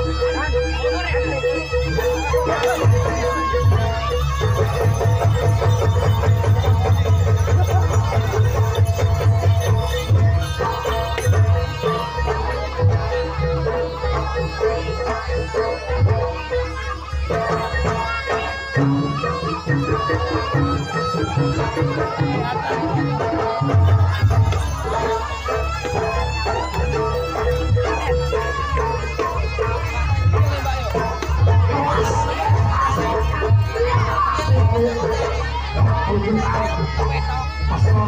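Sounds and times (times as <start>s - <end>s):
shawm melody: 0.0s - 38.0s.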